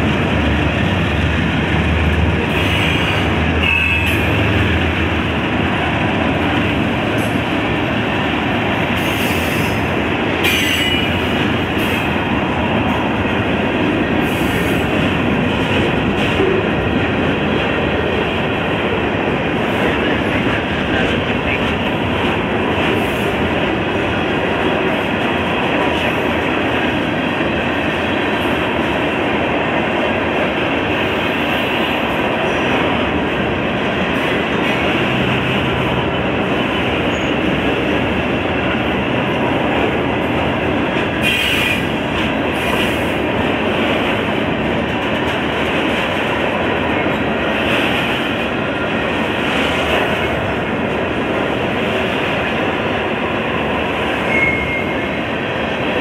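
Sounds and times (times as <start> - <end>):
freight train wheels rumbling: 0.0 - 56.0.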